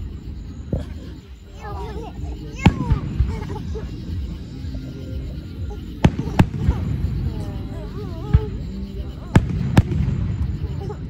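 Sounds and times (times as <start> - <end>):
fireworks bangs: 2.5 - 4.5, 5.2 - 11.0.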